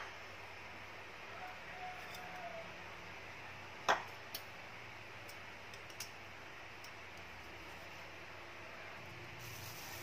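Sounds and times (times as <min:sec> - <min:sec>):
low steady hiss: 0:00.0 - 0:10.0.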